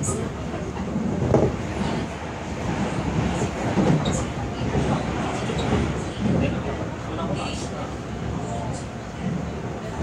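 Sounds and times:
electric train rumbling on rails: 0.0s - 10.0s.

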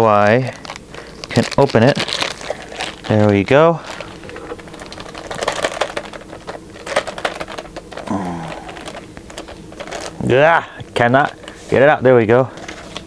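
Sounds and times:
plastic sleeve rustling: 0.0s - 13.0s
man grunting: 8.0s - 8.8s.

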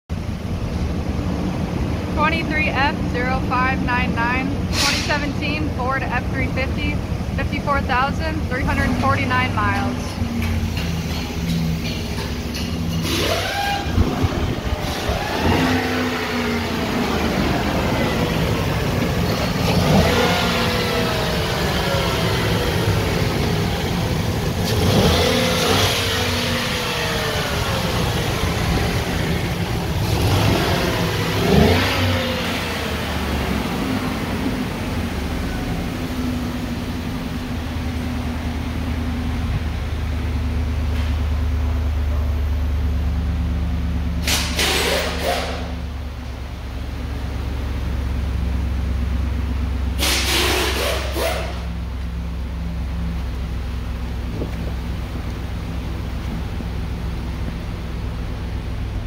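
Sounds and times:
truck engine idling and revving: 0.1s - 59.0s.

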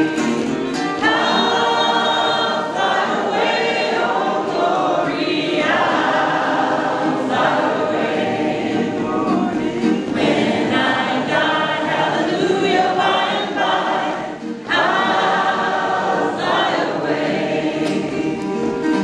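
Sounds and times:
woman singing lead: 0.8s - 6.2s, 8.7s - 19.0s
group singing gospel in harmony: 0.8s - 19.0s.

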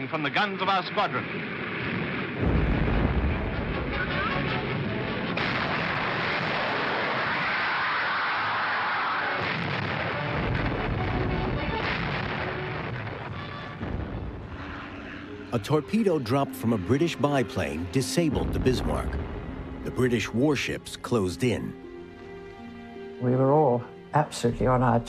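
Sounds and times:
heavy naval gunfire: 1.7s - 14.7s.

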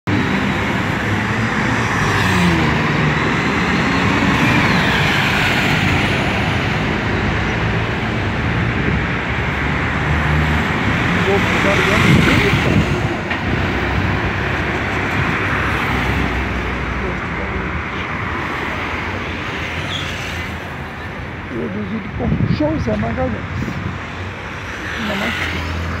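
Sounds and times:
engine rumble and tyre noise: 0.0s - 26.0s
buses passing: 0.1s - 26.0s.

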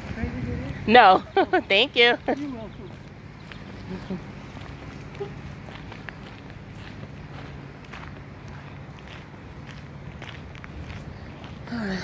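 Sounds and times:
steady low rumble: 0.0s - 12.0s
footsteps on asphalt: 2.1s - 12.0s.

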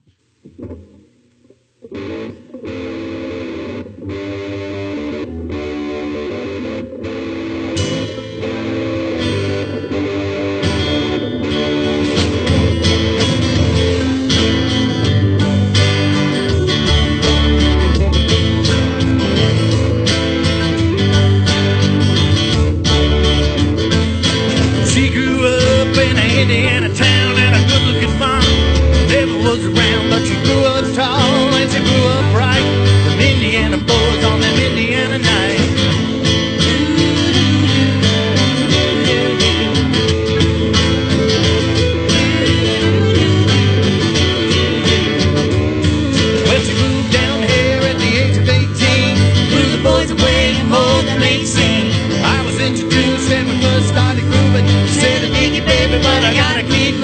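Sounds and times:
guitar chords: 0.0s - 57.0s
live band playing: 1.9s - 57.0s.

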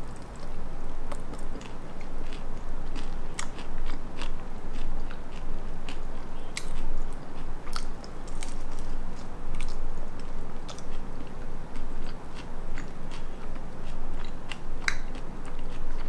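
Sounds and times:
person chewing crunchy food: 0.0s - 16.0s.

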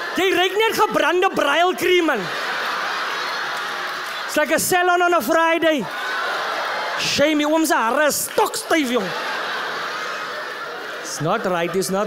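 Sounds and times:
audience laughing: 0.0s - 12.0s.

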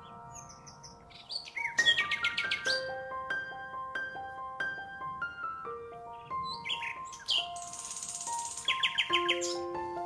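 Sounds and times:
bird chirps and trill: 0.0s - 3.7s, 5.5s - 10.0s
slow background music: 0.0s - 10.0s.

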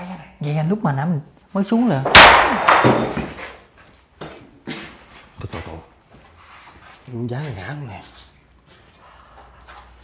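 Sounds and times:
loud bang in a bare room: 2.0s - 3.6s.

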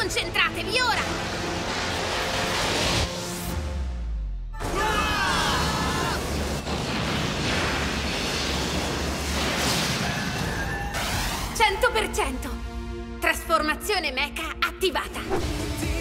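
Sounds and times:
music: 0.0s - 6.8s, 9.9s - 16.0s.

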